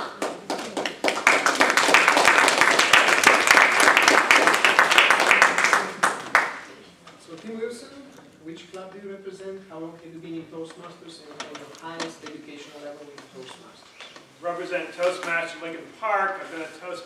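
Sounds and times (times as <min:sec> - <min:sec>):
audience applauding: 0:00.0 - 0:06.7.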